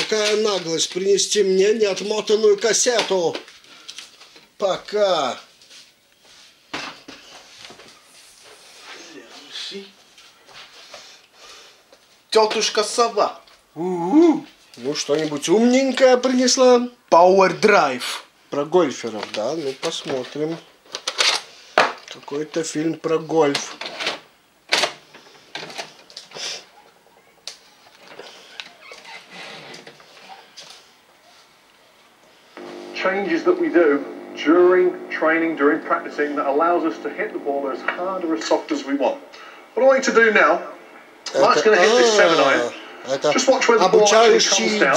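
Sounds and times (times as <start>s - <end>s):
man speaking through tv: 33.0s - 39.2s, 39.8s - 44.9s.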